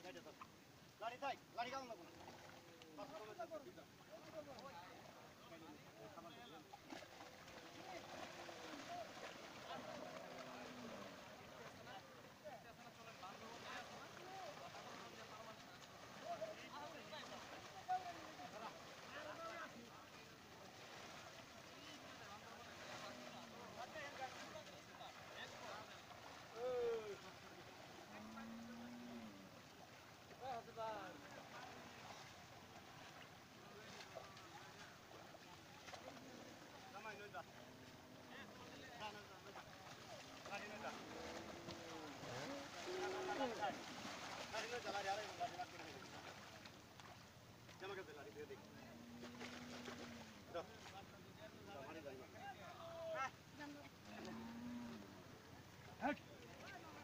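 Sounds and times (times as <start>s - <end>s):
cow mooing faintly: 9.8s - 11.3s, 28.0s - 29.6s, 40.9s - 44.0s, 48.7s - 50.4s, 54.1s - 55.2s.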